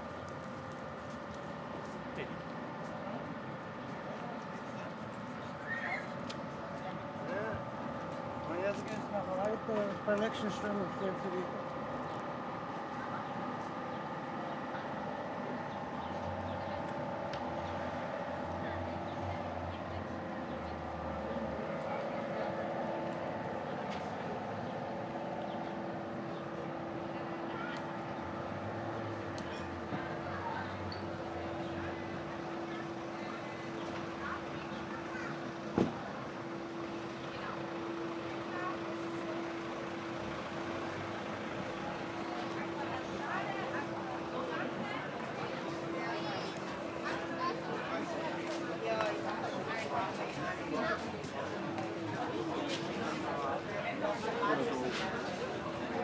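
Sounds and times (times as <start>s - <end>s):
passersby talking: 0.0s - 56.0s.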